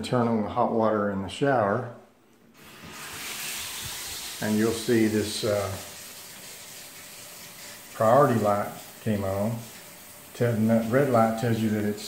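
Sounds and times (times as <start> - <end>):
shower water hissing: 2.6 - 12.0.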